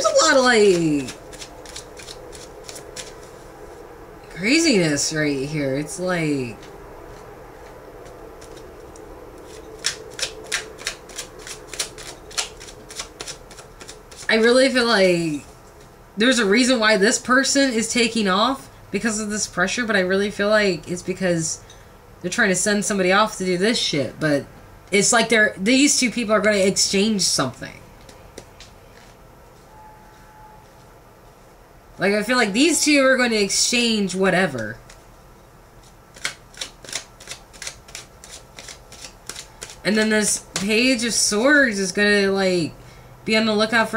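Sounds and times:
cards being shuffled by hand: 0.0s - 3.5s, 6.6s - 14.6s, 35.8s - 40.7s.

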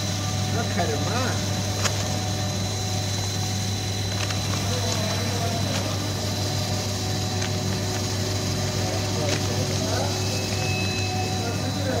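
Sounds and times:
machinery high whine: 0.0s - 12.0s
machinery low hum: 0.0s - 12.0s.

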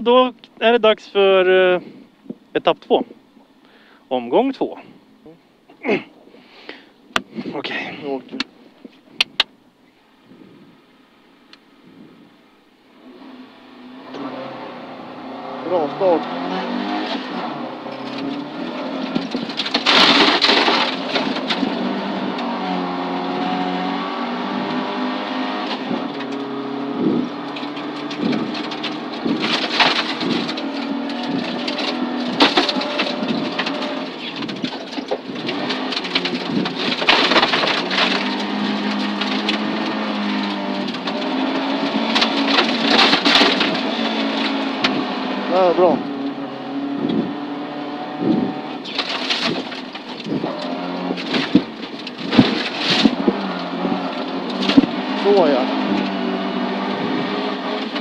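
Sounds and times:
car engine revving under acceleration: 11.8s - 58.0s.

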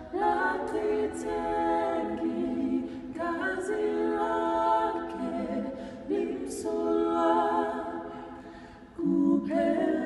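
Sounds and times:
group singing a cappella: 0.0s - 10.0s.

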